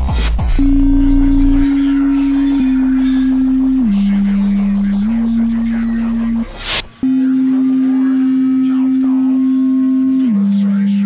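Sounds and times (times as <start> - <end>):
low pure tone: 0.6 - 11.0.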